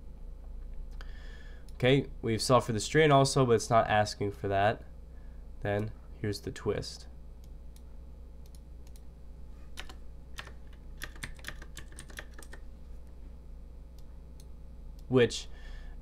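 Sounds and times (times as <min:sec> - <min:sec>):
low steady hum: 0:00.0 - 0:16.0
computer keyboard typing: 0:09.8 - 0:12.6.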